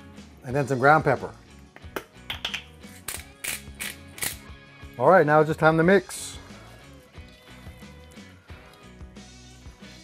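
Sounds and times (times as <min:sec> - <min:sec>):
background music: 0:00.0 - 0:10.0
pepper grinder crunching: 0:02.9 - 0:04.5.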